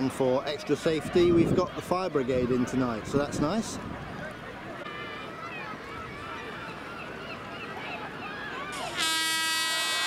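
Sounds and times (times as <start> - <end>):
background murmur: 0.0 - 10.0
distant cries and calls: 4.8 - 10.0.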